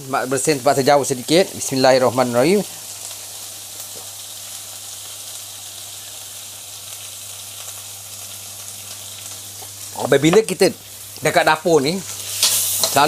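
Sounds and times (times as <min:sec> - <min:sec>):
paste frying in oil: 0:00.0 - 0:13.0.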